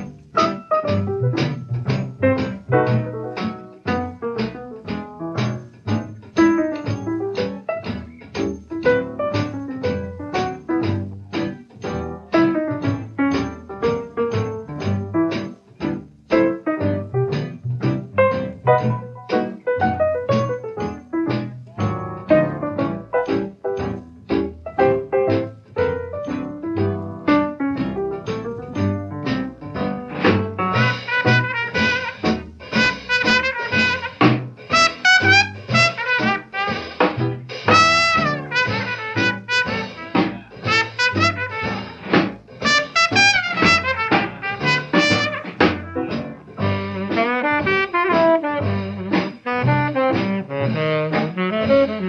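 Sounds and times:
swing jazz band playing: 0.0s - 52.0s.

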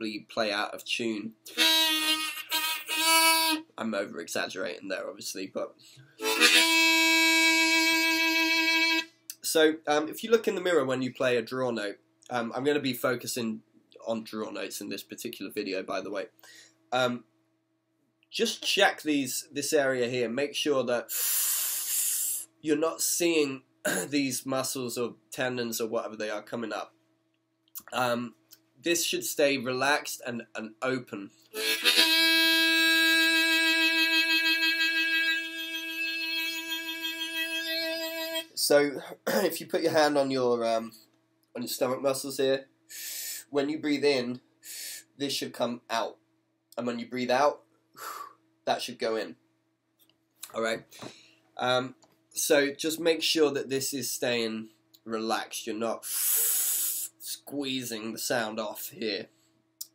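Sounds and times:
harmonica playing a single note: 1.5s - 3.7s, 6.2s - 9.1s, 31.5s - 38.6s.

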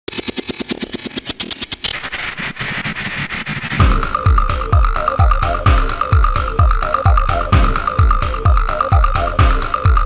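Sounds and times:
stuttering electronic clicks: 0.1s - 7.8s
electronic dance beat: 1.9s - 10.0s.

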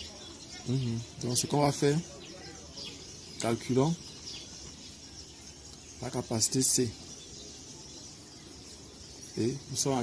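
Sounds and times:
faint chirps: 0.0s - 10.0s.

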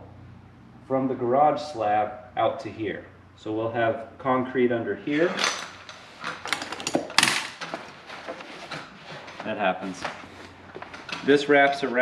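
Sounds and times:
faint clicks and rustles: 5.5s - 12.0s.

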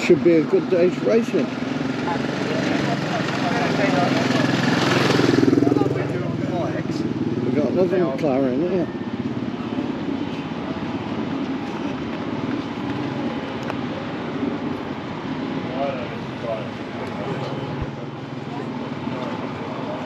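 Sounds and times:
people talking: 0.0s - 9.0s
vehicle engines droning: 0.0s - 20.0s.

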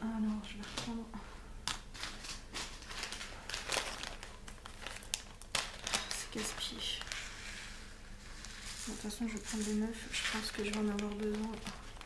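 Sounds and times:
plastic bag crinkling: 1.7s - 12.0s.

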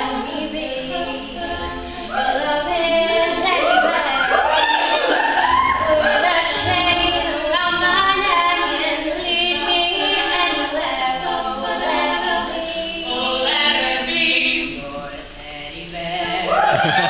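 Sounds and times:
women singing a cappella harmony: 0.0s - 17.0s.

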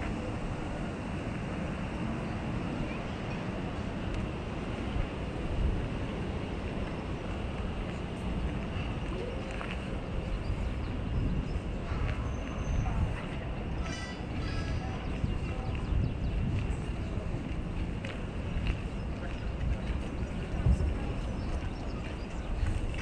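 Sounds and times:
low outdoor rumble and hiss: 0.0s - 23.0s.

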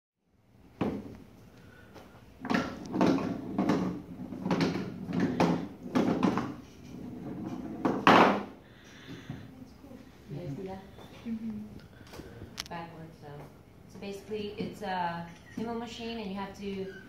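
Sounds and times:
knocking: 2.4s - 8.5s.

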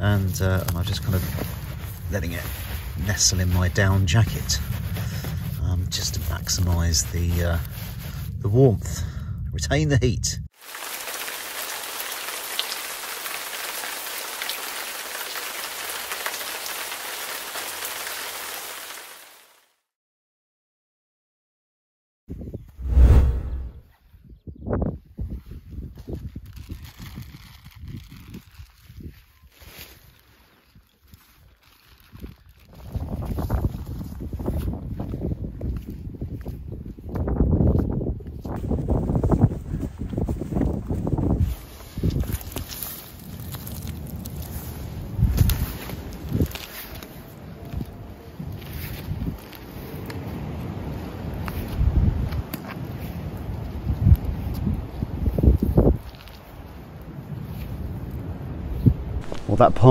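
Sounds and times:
wind buffeting microphone: 0.8s - 9.4s, 32.7s - 42.4s, 51.5s - 52.5s, 53.7s - 56.1s.

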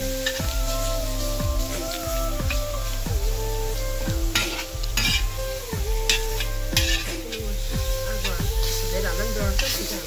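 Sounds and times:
meat sizzling in a pan: 0.0s - 10.0s
metal ladle scraping pan: 4.3s - 5.4s, 6.1s - 7.6s.

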